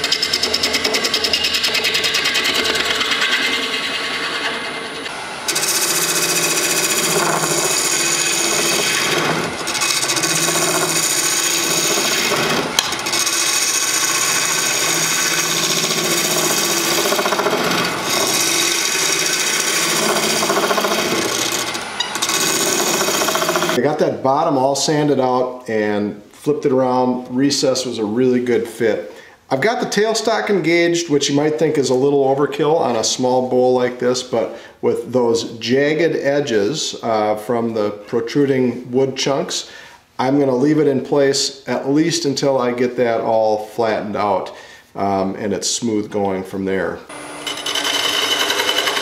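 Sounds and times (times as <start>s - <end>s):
wood lathe tool cutting hiss: 2.5s - 23.8s, 47.1s - 49.0s.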